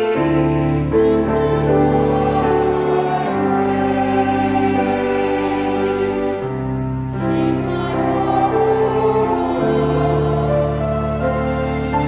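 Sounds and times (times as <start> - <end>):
congregation singing a hymn: 0.0 - 12.0
sustained instrumental accompaniment: 0.0 - 12.0.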